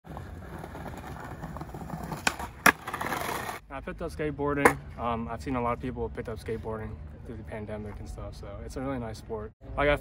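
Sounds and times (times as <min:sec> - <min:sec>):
skateboard wheels rolling on brick: 0:00.0 - 0:03.6
skateboard clacks: 0:00.1 - 0:03.6.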